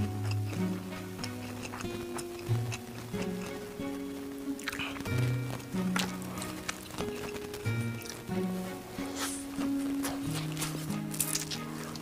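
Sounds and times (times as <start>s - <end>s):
crunchy chewing: 0.0s - 8.4s, 9.0s - 12.0s
soft background music: 0.0s - 12.0s.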